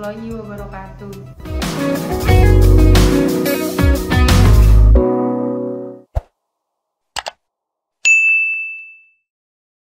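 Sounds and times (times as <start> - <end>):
high bell ding: 8.1 - 9.3.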